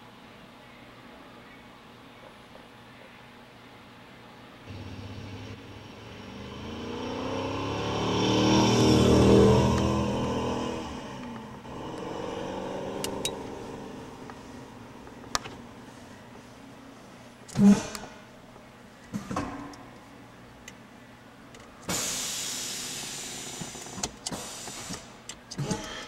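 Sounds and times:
vehicle engine passing by: 4.7 - 15.9.

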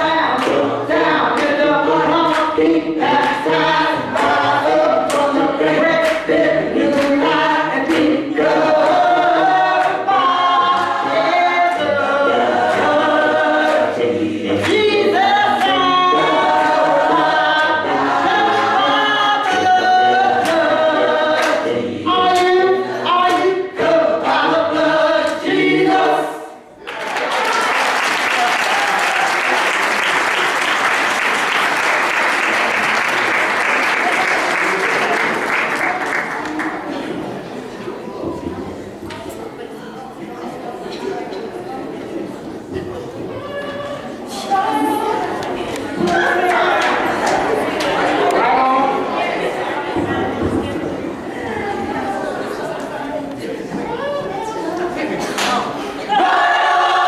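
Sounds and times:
gospel choir singing: 0.0 - 57.0
applause: 26.8 - 36.8.

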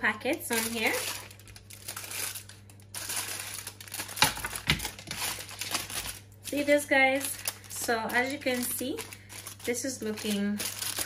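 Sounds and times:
aluminium foil crinkling: 0.0 - 11.0.

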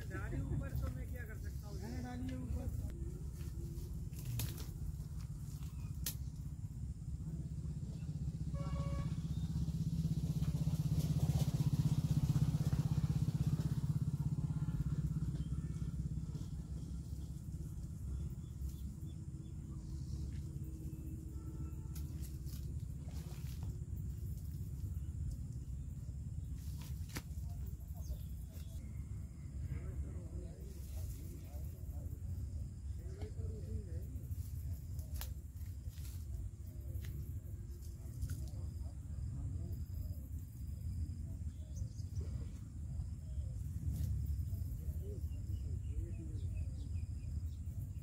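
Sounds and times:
vehicle engine droning past: 6.9 - 25.1.

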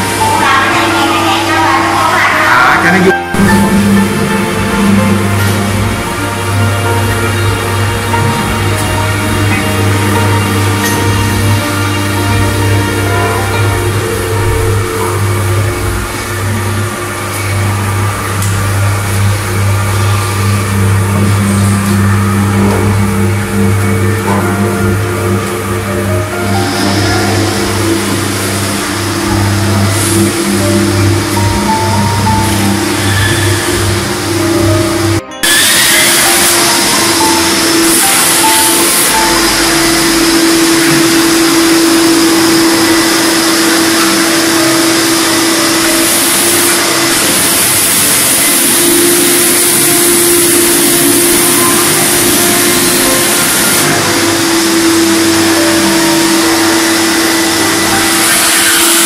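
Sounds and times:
background music: 0.0 - 59.0
floor scrubber humming: 0.0 - 59.0
wet-dry vacuum sucking water: 0.0 - 59.0.

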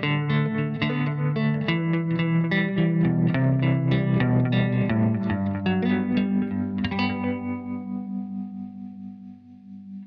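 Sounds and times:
fingerpicked guitar chords: 0.0 - 10.0.

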